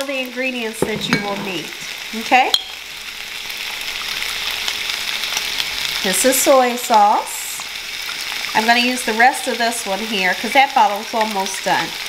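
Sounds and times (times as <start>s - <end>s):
meat sizzling in a pan: 0.0s - 12.0s.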